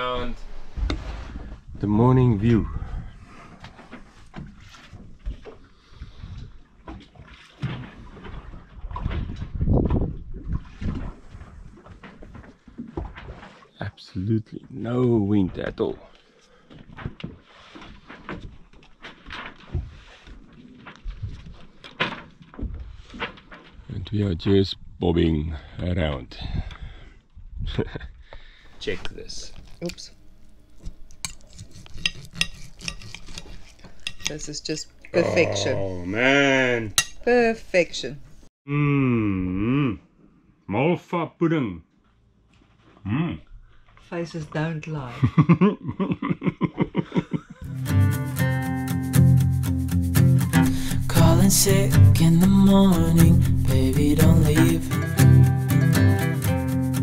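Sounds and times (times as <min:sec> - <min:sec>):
water slapping against hulls: 0:03.4 - 0:13.8
knife and fork scraping on plate: 0:31.1 - 0:34.5.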